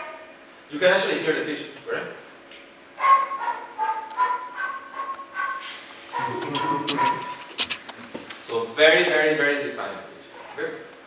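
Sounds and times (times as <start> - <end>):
flute notes: 0.0 - 0.4, 3.0 - 7.6.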